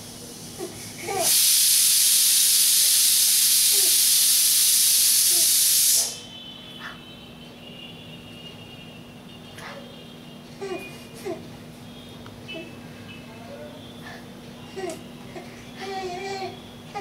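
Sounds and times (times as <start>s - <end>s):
loud steady hiss: 0.0s - 6.4s.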